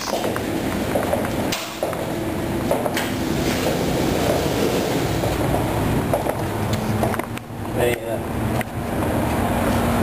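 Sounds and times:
outdoor noise: 0:00.0 - 0:10.0.

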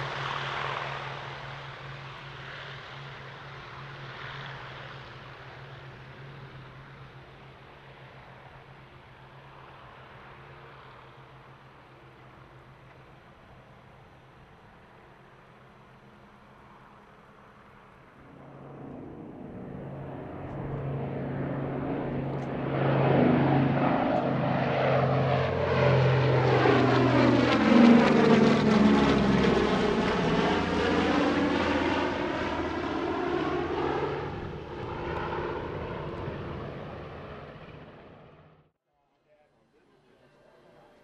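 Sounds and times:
propeller plane engines droning: 0:00.0 - 0:38.7, 0:39.3 - 0:41.0.

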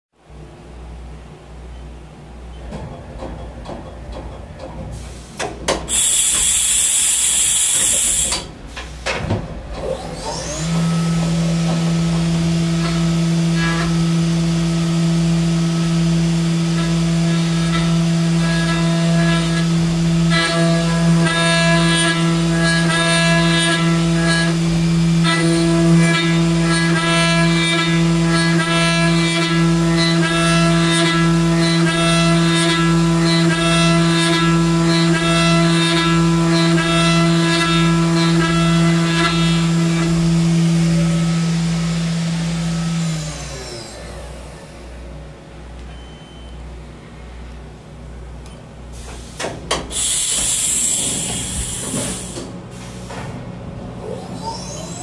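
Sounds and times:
high ringing cutter tones: 0:05.9 - 0:08.4
milling machine spindle whine: 0:05.9 - 0:08.4, 0:54.1 - 0:55.0.

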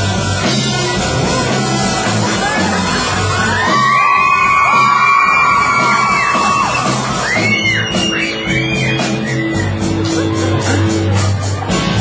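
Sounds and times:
live rock band: 0:00.0 - 0:12.0.

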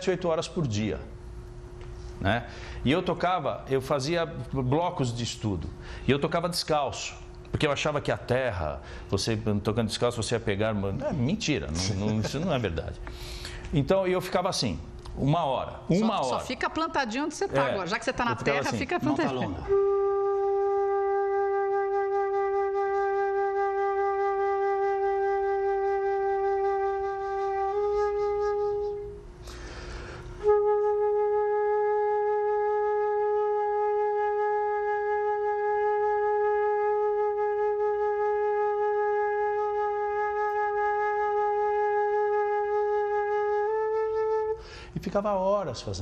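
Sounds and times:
short breath: 0:01.9 - 0:02.8, 0:05.8 - 0:06.1, 0:08.8 - 0:09.1, 0:13.0 - 0:13.7, 0:29.4 - 0:30.4, 0:44.6 - 0:45.0
flute long tones: 0:18.5 - 0:44.8.

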